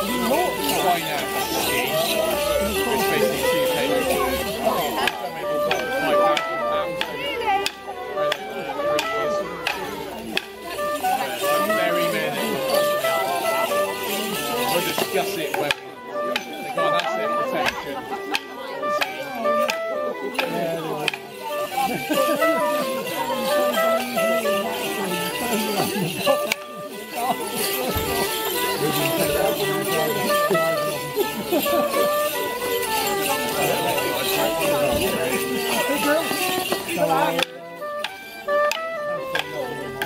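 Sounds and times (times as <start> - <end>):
dance tune on clarinet: 0.0 - 40.0
people talking: 0.0 - 40.0
woodwind dance tune: 37.7 - 40.0.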